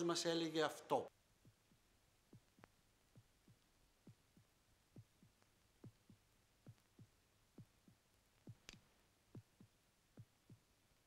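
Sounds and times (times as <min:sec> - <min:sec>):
heartbeat thumps: 0:01.3 - 0:11.0.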